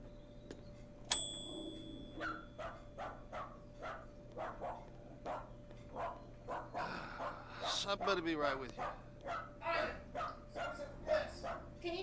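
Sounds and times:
service bell ring: 1.1s - 2.2s
dog barking: 2.2s - 11.8s.

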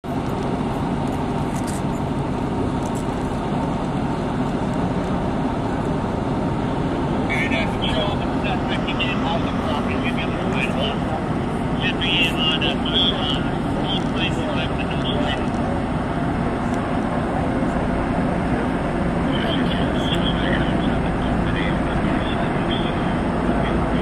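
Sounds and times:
road traffic rumble: 0.0s - 24.0s
faint voices: 7.2s - 24.0s.

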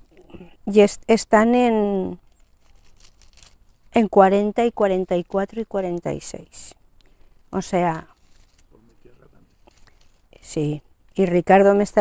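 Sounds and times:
man speaking: 8.8s - 9.4s.

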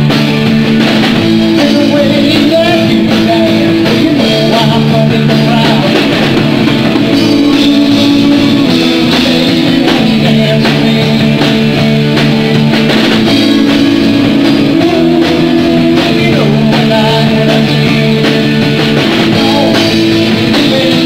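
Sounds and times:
drum kit: 0.0s - 21.0s
electric guitars: 0.0s - 21.0s.

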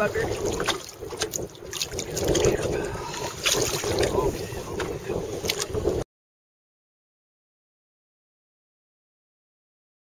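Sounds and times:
water lapping against boat: 0.0s - 6.0s
wind buffeting microphone: 0.0s - 6.0s.

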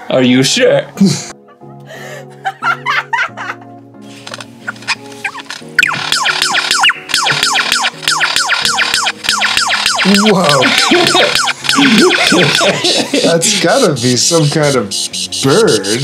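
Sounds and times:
background music: 0.0s - 16.0s
rapid downward whistled notes: 5.8s - 12.7s
lyrebird chirps: 14.3s - 16.0s.

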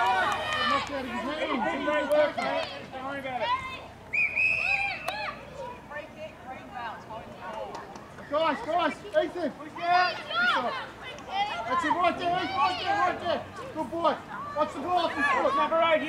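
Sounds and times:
people shouting short calls: 0.0s - 5.9s, 9.6s - 16.0s.

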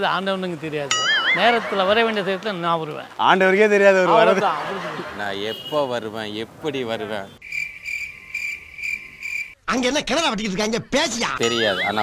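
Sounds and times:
man talking: 0.0s - 7.4s, 9.6s - 12.0s
cricket chirp sound effect: 7.4s - 9.6s.

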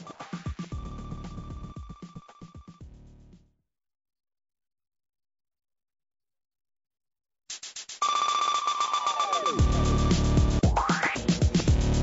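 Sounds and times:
high ringing electronic tone: 0.0s - 2.4s, 8.0s - 10.2s
news theme music: 8.0s - 11.5s.

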